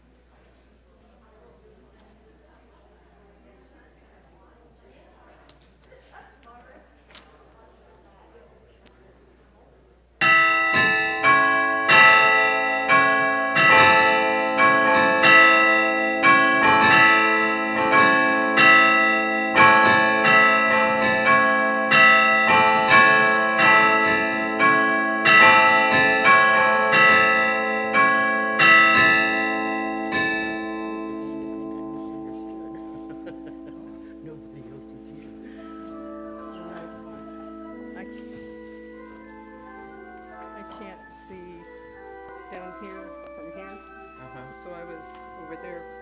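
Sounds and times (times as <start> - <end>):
church bells ringing: 10.2 - 46.0.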